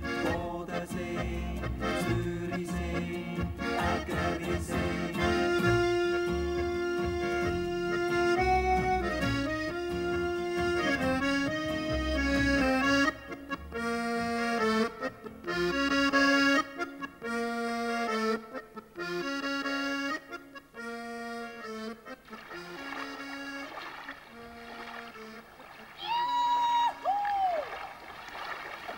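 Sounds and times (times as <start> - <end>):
low accompaniment: 0.0 - 25.7
piano accordion folk tune: 0.0 - 26.0.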